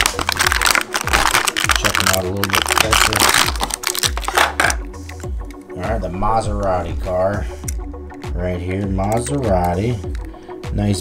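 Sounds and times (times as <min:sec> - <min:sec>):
plastic packaging crackling: 0:00.0 - 0:04.9
background music with low beat: 0:00.0 - 0:11.0.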